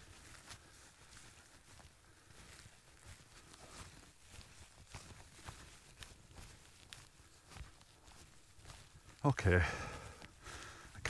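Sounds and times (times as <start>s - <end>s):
soft footsteps on dry grass: 0.0s - 11.0s.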